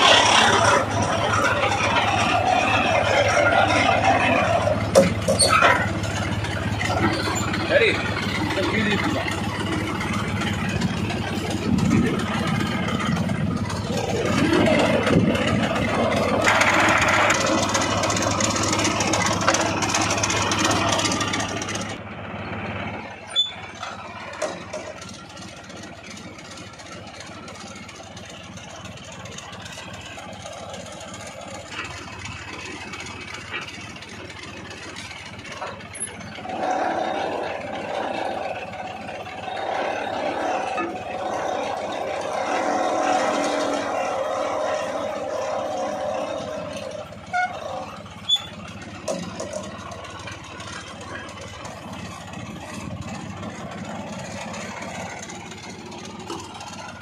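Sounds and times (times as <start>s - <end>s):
rig engine running: 0.0s - 57.0s.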